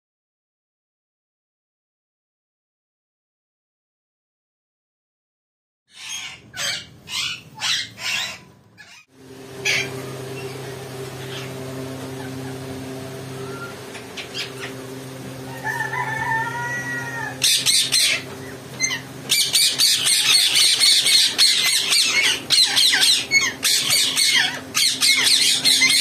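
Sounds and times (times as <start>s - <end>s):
parakeets squawking: 5.9s - 26.0s
steady low hum: 8.4s - 26.0s
warbling whistled chatter: 17.0s - 26.0s.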